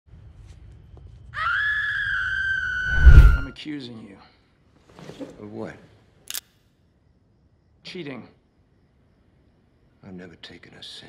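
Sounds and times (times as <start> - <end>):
woman screaming: 1.4 - 3.0.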